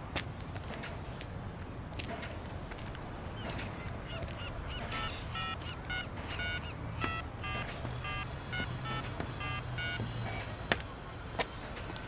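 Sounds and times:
phone keypad beeps: 4.4 - 10.1.

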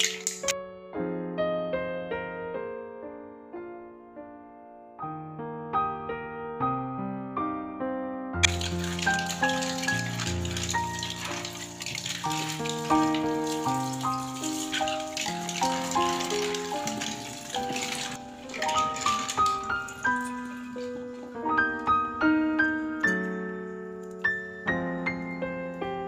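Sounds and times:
tap water pouring over mussels: 0.0 - 0.5, 8.4 - 21.3
piano music: 0.0 - 26.0.

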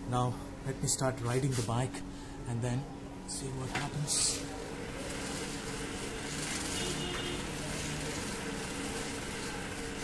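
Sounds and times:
bicycle dynamo whirring: 4.1 - 10.0.

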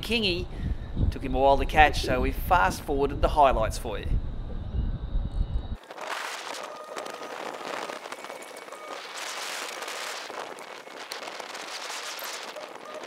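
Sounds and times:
dense crackling hiss: 5.8 - 13.0.

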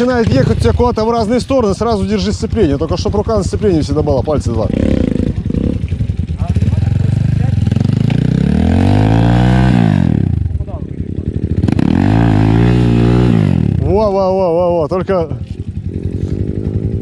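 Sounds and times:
dirt bike engine revving: 0.0 - 14.3, 15.8 - 17.0.

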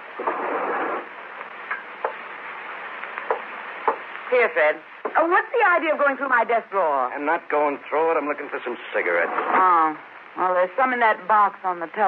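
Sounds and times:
noisy rush of sound: 0.0 - 5.1.

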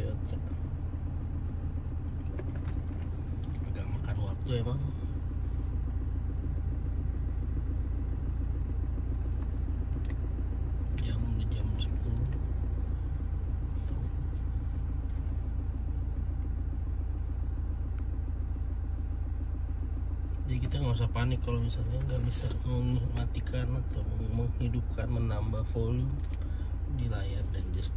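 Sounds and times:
car engine idling: 0.0 - 27.9.

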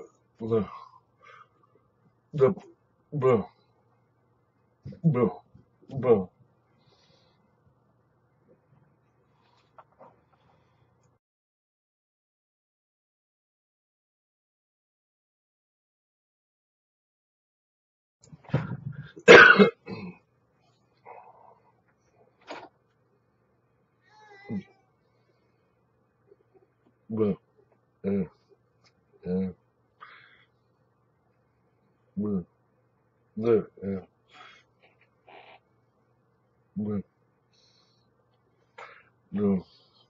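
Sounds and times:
man clearing throat: 19.2 - 20.2.

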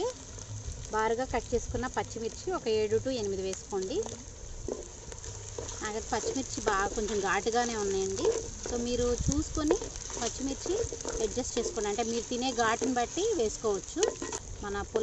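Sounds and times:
onions sizzling in hot oil: 0.0 - 15.0
wooden spatula stirring: 1.5 - 15.0.

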